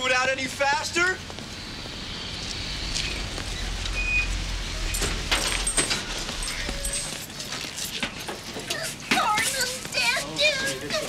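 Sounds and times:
steady hiss: 0.3s - 7.9s.

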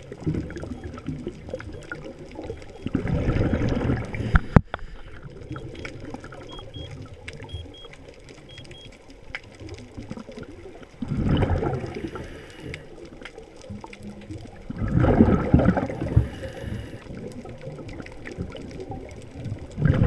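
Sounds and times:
underwater clicks: 0.0s - 20.0s
underwater exhaled bubbles rushing: 0.0s - 20.0s.

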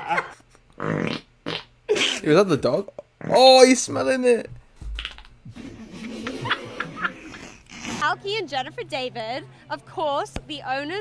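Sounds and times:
short farts: 0.8s - 1.7s, 5.0s - 8.0s.

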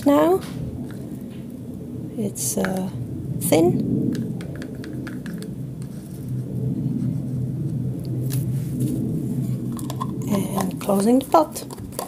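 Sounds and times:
stick stirring paint in pot: 9.8s - 12.0s.

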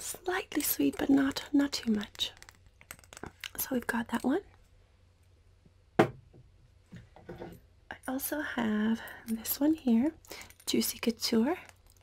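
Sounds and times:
glass bottle knocking on hard surface: 6.0s - 6.2s.

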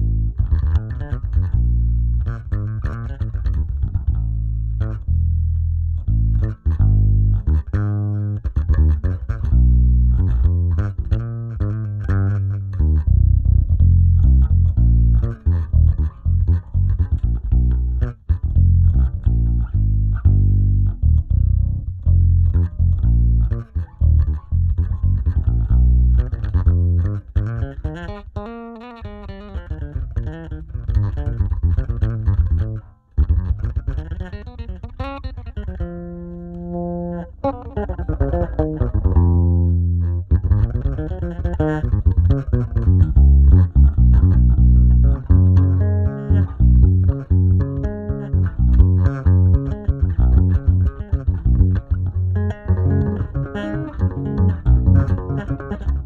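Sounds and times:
electric bass playing: 0.0s - 56.0s.

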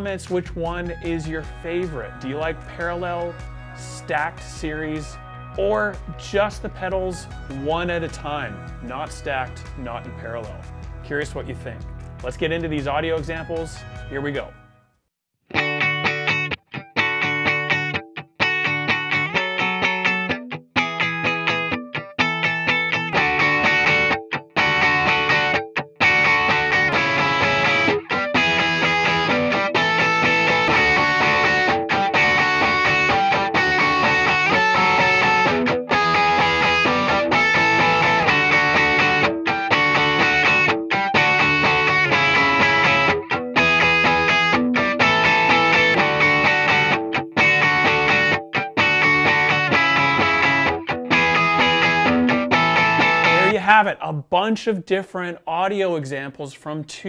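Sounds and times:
clean electric guitar chords: 0.8s - 11.0s, 15.5s - 53.6s
overdriven electric guitar: 15.5s - 53.5s.

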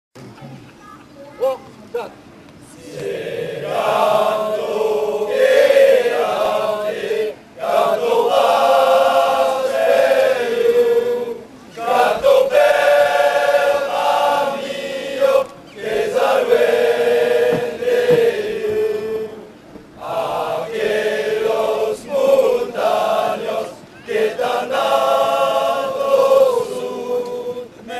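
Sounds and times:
men singing together: 2.9s - 27.9s.

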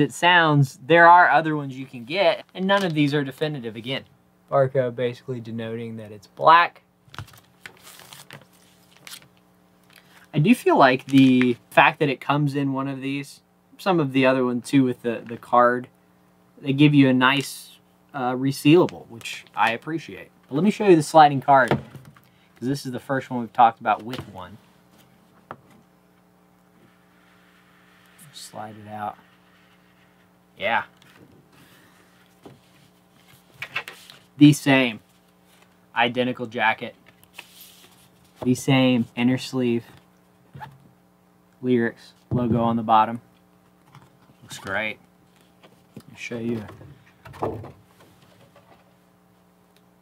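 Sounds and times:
low steady hum: 0.0s - 50.0s
plastic sleeve crinkling: 7.1s - 10.3s
cardboard sleeve rustling and scraping: 26.8s - 34.3s, 37.3s - 38.5s.

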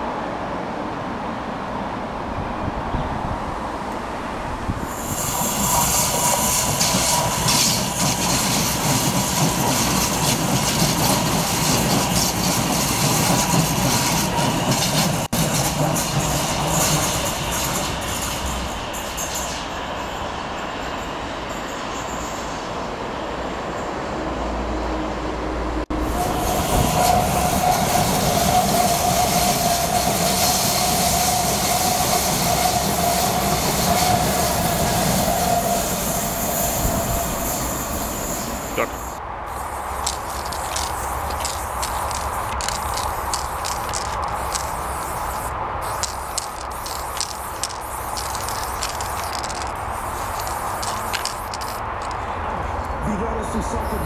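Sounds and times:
train rumbling past: 0.0s - 54.0s
wheels squealing on rails: 4.8s - 52.9s.

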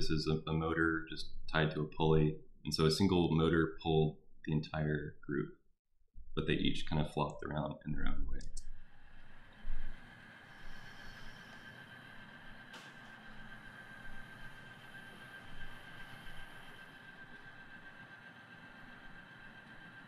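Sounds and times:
faint hum and hiss: 6.4s - 20.0s
thin high whine: 6.4s - 20.0s
click: 8.3s - 8.8s.

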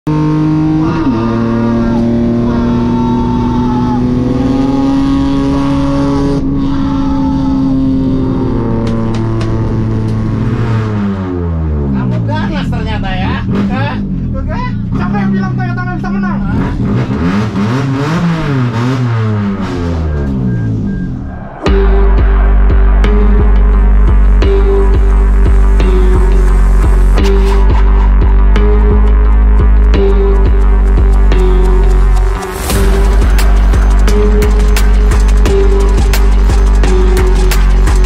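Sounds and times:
race car engine revving: 0.0s - 38.0s.

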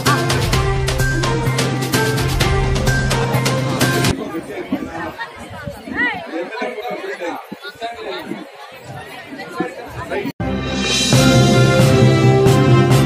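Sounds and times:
news intro theme music: 0.0s - 4.1s, 10.4s - 13.0s
crowd chattering: 0.0s - 12.9s.

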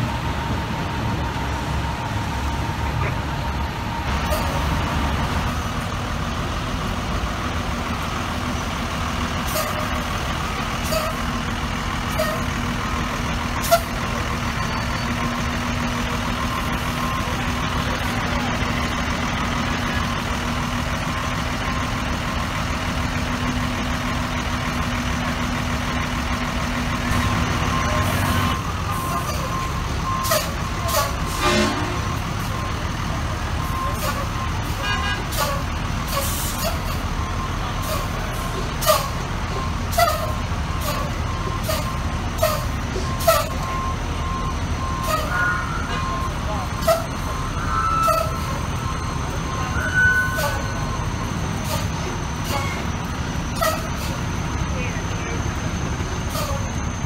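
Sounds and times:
diesel engines droning: 0.0s - 57.0s
reversing alarm beeping: 0.0s - 57.0s.

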